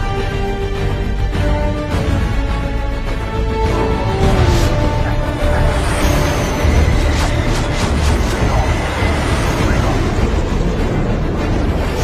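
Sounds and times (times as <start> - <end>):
dramatic film music: 0.0 - 12.0.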